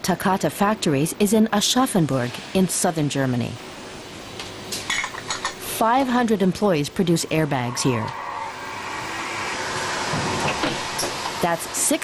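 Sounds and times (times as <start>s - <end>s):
machinery whirring hum: 5.6s - 12.0s.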